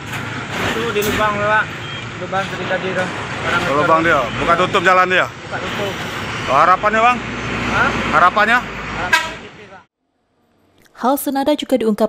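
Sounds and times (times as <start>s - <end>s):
man speaking: 0.9s - 9.9s.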